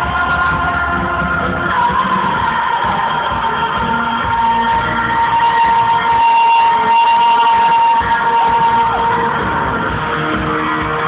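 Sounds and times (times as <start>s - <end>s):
concert music: 0.0s - 11.0s
crowd noise: 0.0s - 11.0s.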